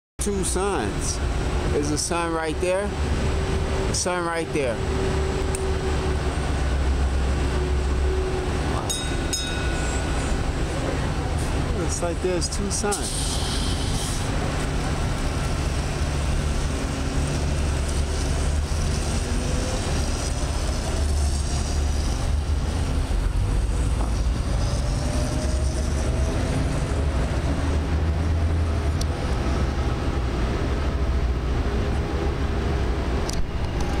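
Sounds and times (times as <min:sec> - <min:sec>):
rumble of passing vehicles: 0:00.2 - 0:34.0.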